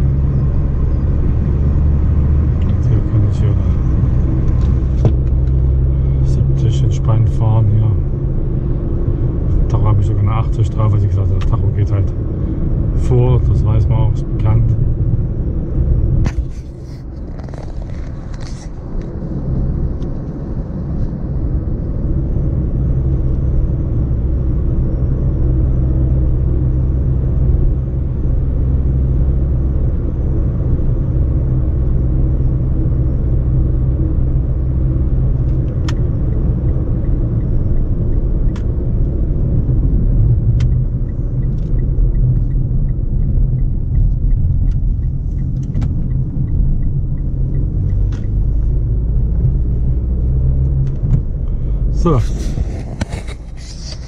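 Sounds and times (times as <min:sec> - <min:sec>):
car cabin rumble: 0:00.0 - 0:20.4, 0:31.7 - 0:54.0
engine drone: 0:00.0 - 0:54.0.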